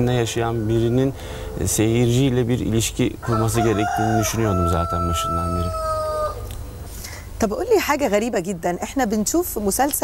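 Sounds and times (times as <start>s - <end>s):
rooster crowing: 3.2s - 6.5s.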